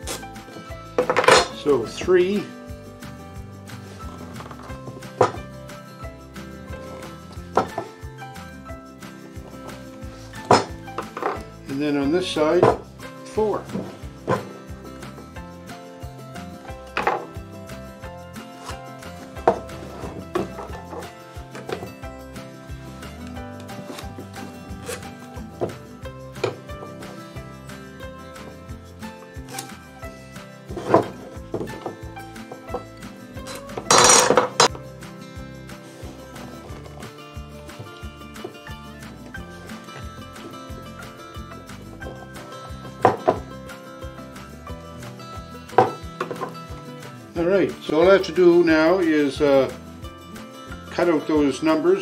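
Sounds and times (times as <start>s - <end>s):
background music: 0.0s - 52.0s
wood and steel clinking on workbench: 0.1s - 2.5s, 4.0s - 5.5s, 6.9s - 8.0s, 9.4s - 11.8s, 16.4s - 17.4s, 18.4s - 27.3s, 30.7s - 34.8s, 37.7s - 44.4s, 45.6s - 47.0s.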